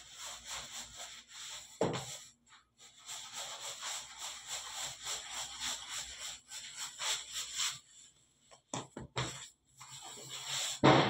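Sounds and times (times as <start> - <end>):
hands rubbing dough on table: 0.0 - 10.8.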